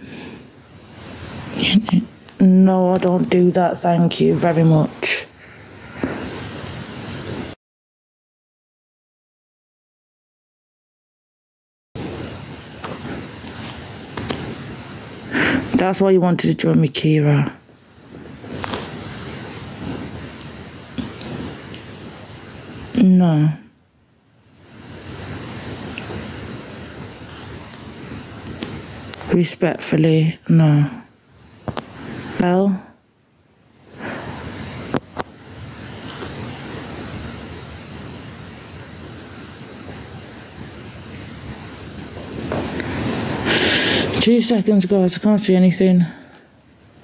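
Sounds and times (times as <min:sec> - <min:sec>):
steady rushing noise: 0:00.0 - 0:07.6, 0:12.0 - 0:23.0, 0:24.5 - 0:29.5, 0:33.7 - 0:47.0.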